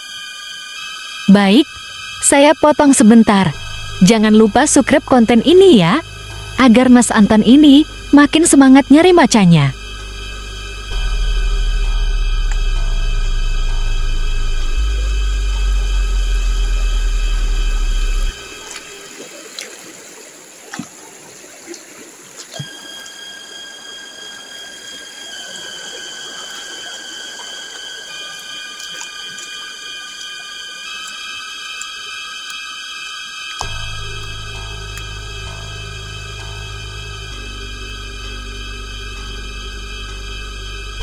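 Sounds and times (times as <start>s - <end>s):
loud deep drone: 0.0s - 19.3s, 22.6s - 41.0s
sustained high tones: 0.0s - 19.4s, 22.5s - 41.0s.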